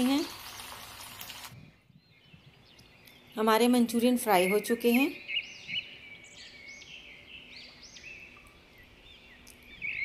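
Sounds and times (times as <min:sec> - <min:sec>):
birds chirping: 0:01.4 - 0:10.0.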